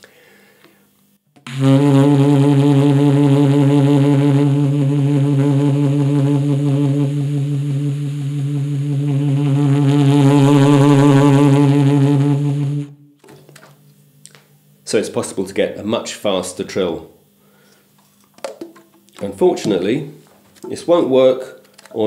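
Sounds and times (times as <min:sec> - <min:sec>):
saxophone trill: 0:01.4 - 0:13.2.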